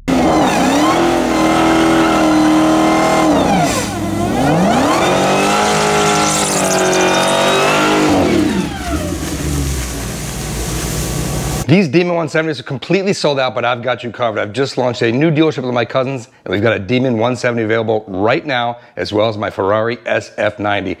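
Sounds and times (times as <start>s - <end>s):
car engine revving: 0.0s - 11.6s.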